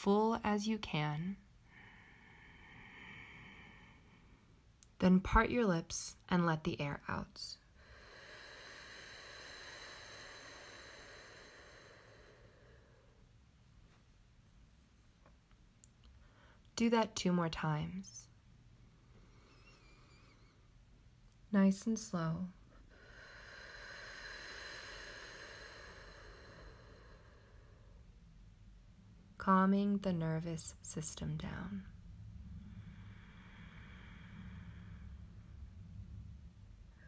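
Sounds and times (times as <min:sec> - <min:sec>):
slow breathy exhale: 0:01.7 - 0:04.6, 0:07.6 - 0:13.3, 0:19.0 - 0:20.7, 0:22.6 - 0:28.1, 0:32.3 - 0:37.0.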